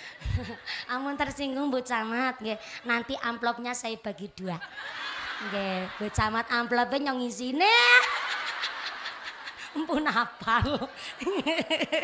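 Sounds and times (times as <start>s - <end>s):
woman speaking: 0.3s - 4.7s, 5.4s - 8.2s, 9.7s - 11.0s
women laughing: 4.7s - 6.4s, 8.0s - 12.0s.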